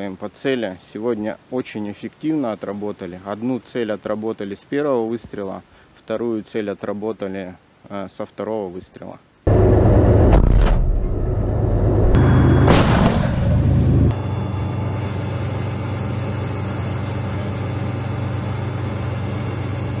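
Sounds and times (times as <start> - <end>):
short sharp burst of noise: 9.5 - 20.0.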